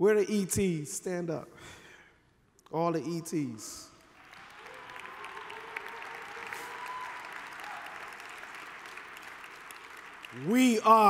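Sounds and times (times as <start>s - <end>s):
large audience applauding: 4.0s - 11.0s.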